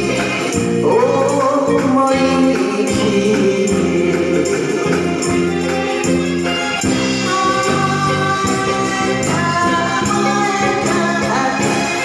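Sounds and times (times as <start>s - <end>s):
woman singing into a microphone: 0.0s - 6.0s, 6.9s - 12.0s
live band with drums and keyboards: 0.0s - 12.0s.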